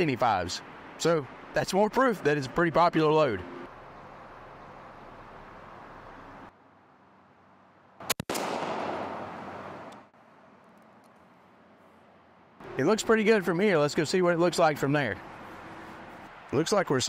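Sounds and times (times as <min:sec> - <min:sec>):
shotgun shot with echo: 0:08.1 - 0:09.6.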